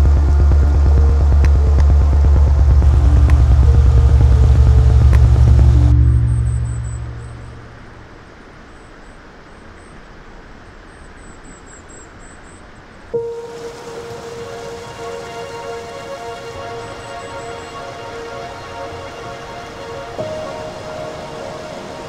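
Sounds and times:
sustained music notes: 0:00.0 - 0:08.1, 0:13.2 - 0:22.0
rushing water: 0:12.8 - 0:22.0
stream flowing: 0:13.2 - 0:22.0.

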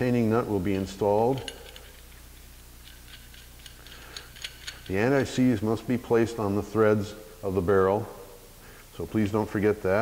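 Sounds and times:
faint metallic clicks and scrapes: 0:00.9 - 0:05.4.

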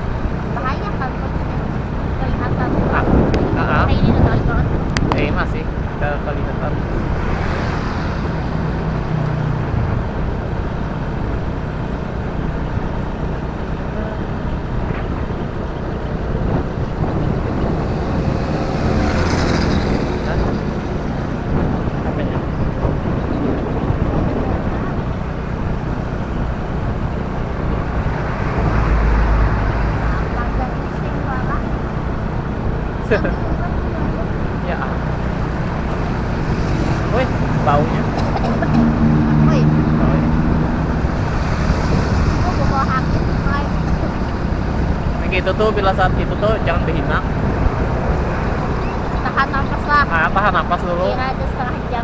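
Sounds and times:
motorcycle engine: 0:00.0 - 0:52.0
wind on microphone: 0:00.0 - 0:52.0.

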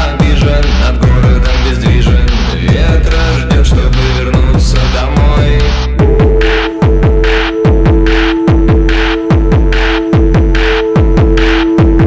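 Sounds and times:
electronic kick drum: 0:00.0 - 0:12.0
held synth drone: 0:00.0 - 0:12.0.

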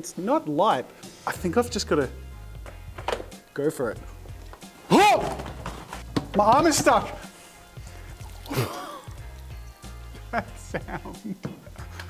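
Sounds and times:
background music: 0:00.0 - 0:12.0
jelly squelching wetly: 0:07.1 - 0:09.6.

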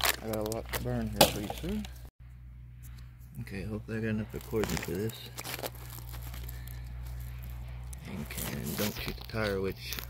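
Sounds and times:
low hum: 0:00.0 - 0:10.0
crackling and rustling: 0:04.4 - 0:10.0.

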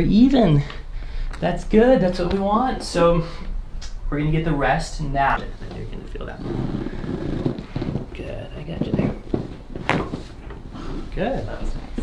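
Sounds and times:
spinal joint cracking: 0:05.7 - 0:10.7.

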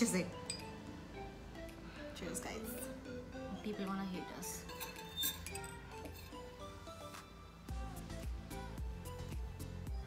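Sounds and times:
background music: 0:00.0 - 0:10.0
glass tumbler clinking: 0:00.4 - 0:00.8, 0:04.5 - 0:06.6.

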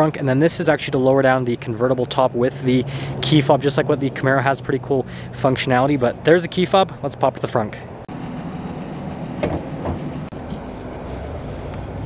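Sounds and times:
latch releasing click: 0:09.4 - 0:10.0.

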